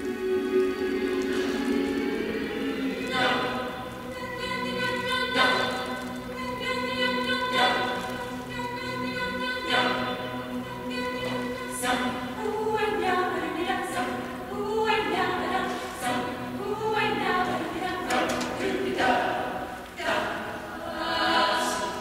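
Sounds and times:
choir singing unaccompanied: 0.0s - 22.0s.

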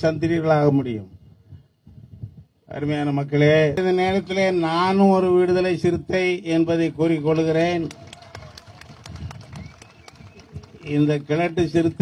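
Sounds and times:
people clapping: 7.7s - 12.0s.

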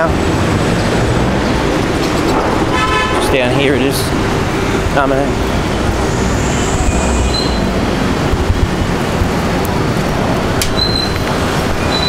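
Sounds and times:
traffic engines and tyres rumbling: 0.0s - 12.0s
brief high squeal: 6.4s - 7.7s.

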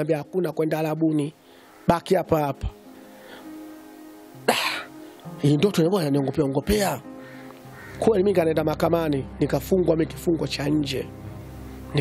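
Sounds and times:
background music: 0.0s - 12.0s
man coughing: 4.5s - 4.9s.

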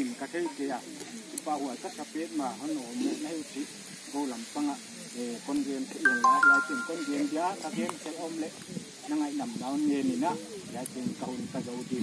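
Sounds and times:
faint background hiss: 0.0s - 11.8s
person talking: 6.1s - 7.8s.

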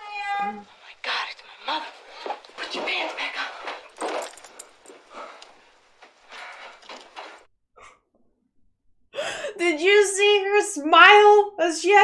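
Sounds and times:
woman gasping: 9.2s - 9.6s.

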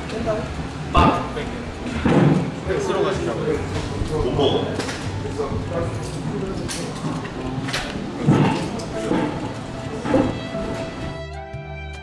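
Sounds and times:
indistinct voices: 0.0s - 11.1s.

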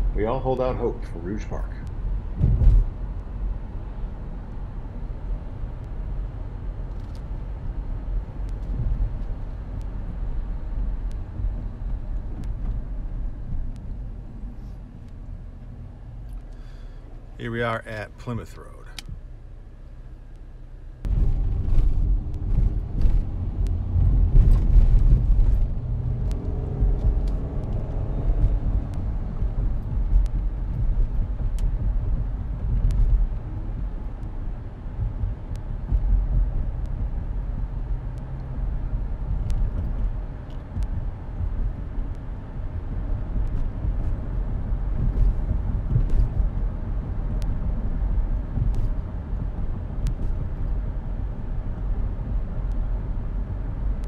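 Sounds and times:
road and engine rumble in car: 0.0s - 54.0s.

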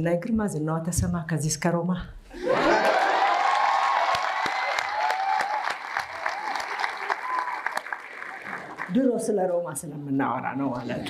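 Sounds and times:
audience applauding: 2.4s - 9.0s.

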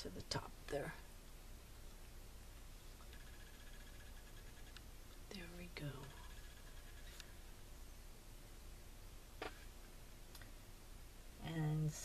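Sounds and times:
thin steady high tone: 3.0s - 7.5s.

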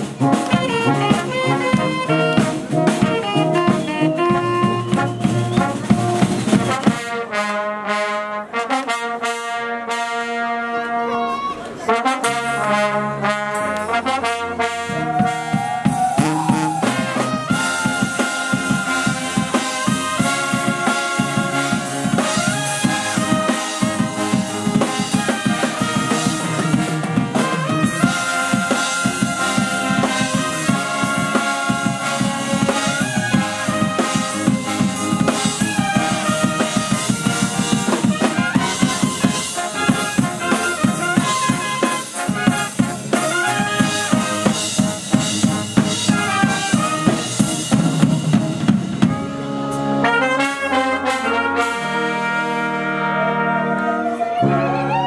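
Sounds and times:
drum kit beat: 0.0s - 7.4s, 12.2s - 53.0s
sliding brass note: 0.0s - 11.1s, 11.9s - 55.0s
brass band playing: 0.0s - 55.0s.

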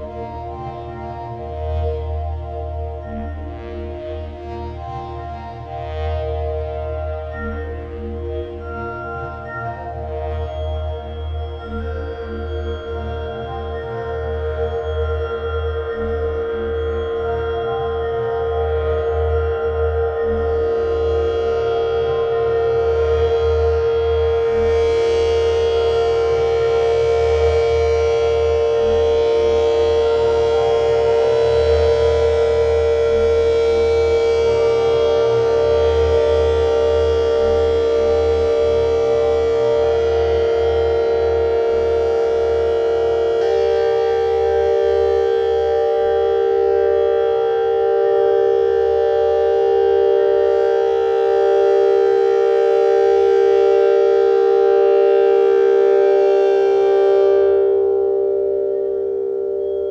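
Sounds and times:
pulsing low synth tone: 0.0s - 59.9s
synthesizer ambient drone: 0.0s - 59.9s.

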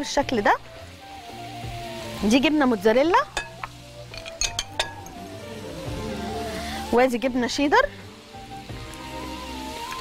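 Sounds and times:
background music: 0.0s - 10.0s
metal utensil clinking on glass dish: 3.4s - 5.2s.

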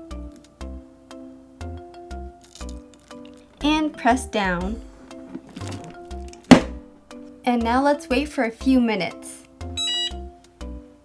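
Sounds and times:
heat press handle thunk: 5.2s - 6.9s.

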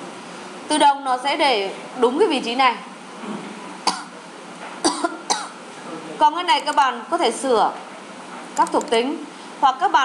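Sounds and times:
woman coughing: 4.8s - 5.6s.

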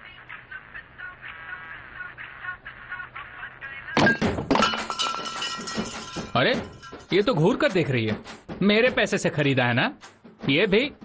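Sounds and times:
loud thud: 4.0s - 4.9s
objects crashing and breaking: 4.0s - 7.0s.

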